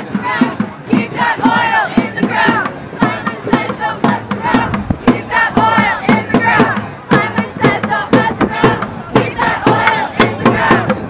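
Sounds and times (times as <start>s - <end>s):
crowd chanting in unison: 0.0s - 11.0s
marching snare drum: 0.0s - 11.0s.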